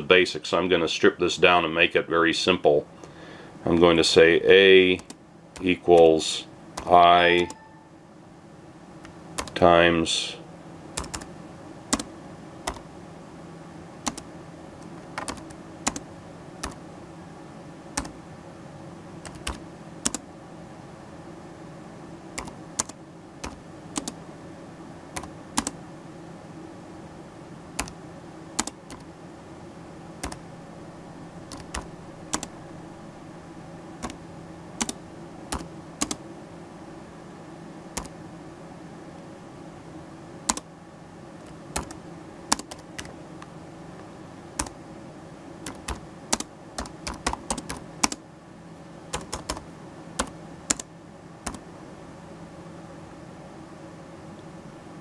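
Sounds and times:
steady low hum: 0.0 - 55.0
keyboard typing: 6.8 - 7.8, 9.4 - 9.6, 11.0 - 11.3, 11.9 - 12.8, 14.0 - 14.2, 15.2 - 16.0, 16.6 - 16.8, 18.0 - 18.2, 19.2 - 20.2, 22.4 - 24.2, 25.2 - 25.8, 27.8 - 28.0, 28.6 - 29.1, 30.2 - 30.4, 31.5 - 32.5, 34.8 - 36.2, 40.5 - 40.7, 41.4 - 43.1, 44.6 - 44.8, 45.6 - 48.2, 49.1 - 49.6, 50.2 - 51.6.

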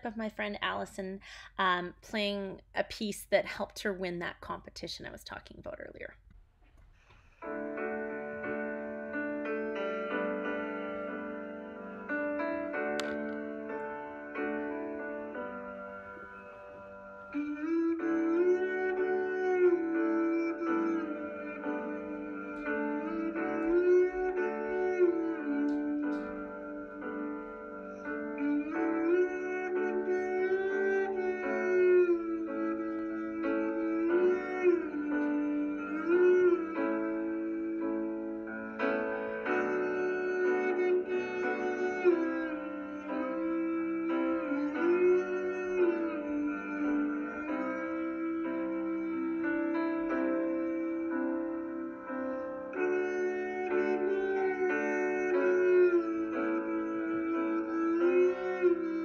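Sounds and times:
sustained accompaniment: 7.4 - 59.0.

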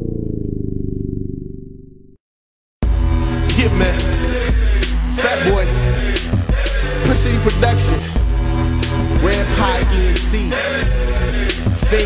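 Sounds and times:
low buzzing synth tone: 0.0 - 2.2.

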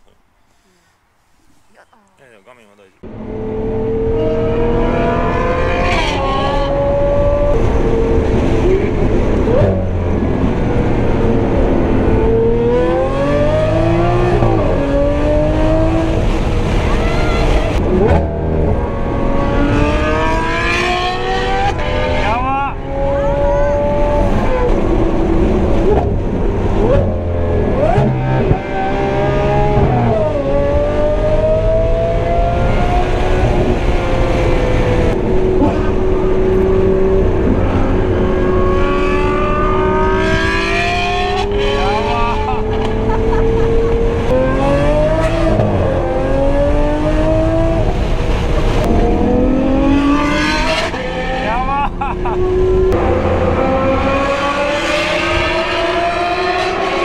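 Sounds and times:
car engine revving through gears: 3.0 - 17.0, 17.7 - 57.0.

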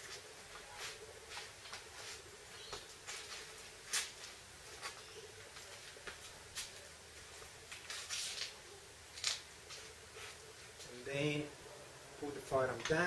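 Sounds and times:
footsteps scuffing on concrete: 0.0 - 6.8.

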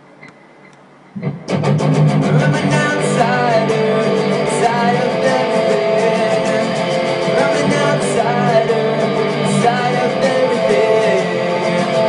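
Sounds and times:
guitar music with steady beat: 1.2 - 12.0.

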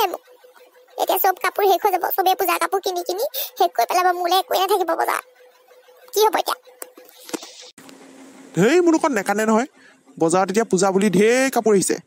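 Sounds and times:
high cartoon voice warbling: 0.0 - 0.2, 1.0 - 5.2, 6.1 - 6.6.

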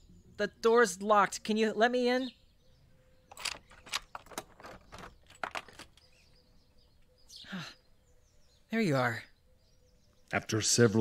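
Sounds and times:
door lock clicking and rattling: 3.3 - 6.2.

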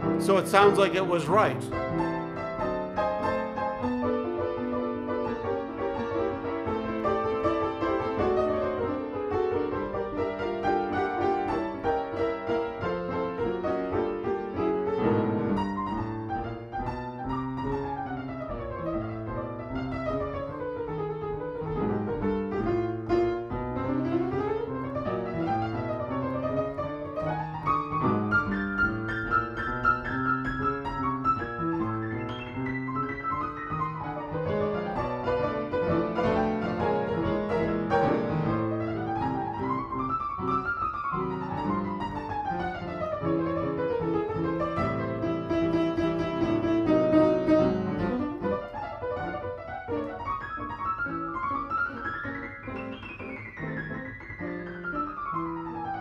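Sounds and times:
grand piano jazz improvisation: 0.0 - 56.0.

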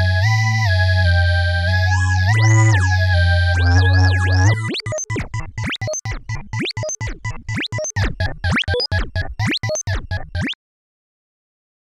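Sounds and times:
synthesizer playing chopped notes: 1.9 - 10.6.

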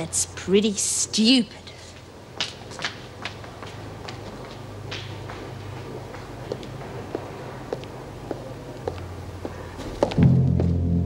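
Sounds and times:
low sustained music: 10.2 - 11.0.

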